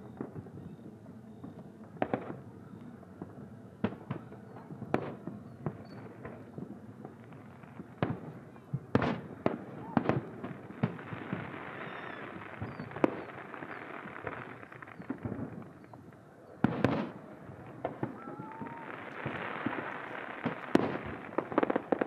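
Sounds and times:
fireworks bangs: 0:00.0 - 0:22.0.

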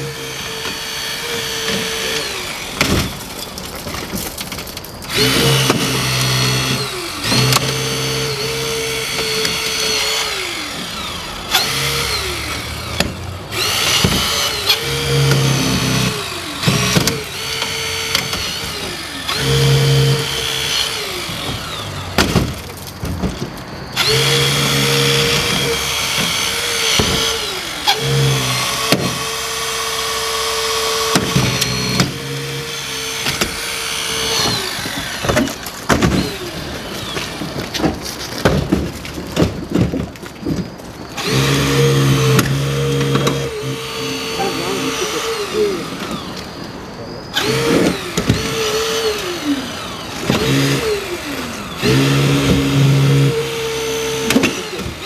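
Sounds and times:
hydraulic spreader motor: 0:00.0 - 0:55.0.

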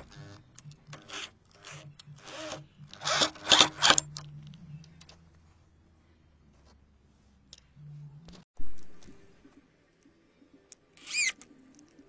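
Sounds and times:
electric drill driving a screw: 0:01.0 - 0:04.0.

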